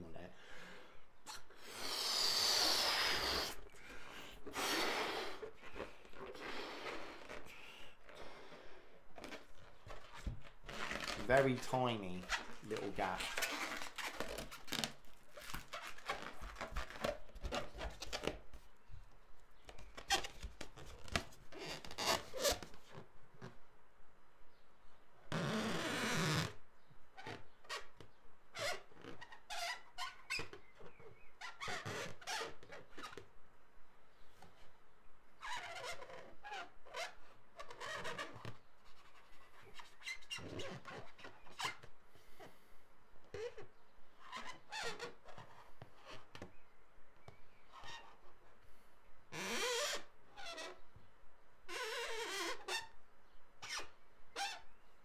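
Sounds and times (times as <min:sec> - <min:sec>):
marker pen squeaking on balloon: 0:01.2 - 0:18.8, 0:19.6 - 0:23.6, 0:25.3 - 0:33.3, 0:35.4 - 0:42.5, 0:43.2 - 0:48.5, 0:49.3 - 0:54.9.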